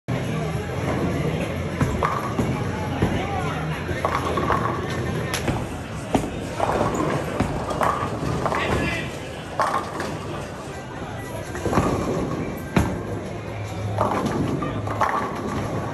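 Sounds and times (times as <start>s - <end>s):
background chatter: 0.1s - 15.9s
background music: 0.1s - 15.9s.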